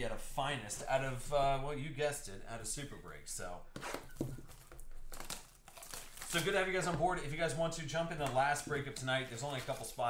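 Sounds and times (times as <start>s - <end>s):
plastic wrap crinkling: 4.0s - 7.0s, 9.0s - 10.0s.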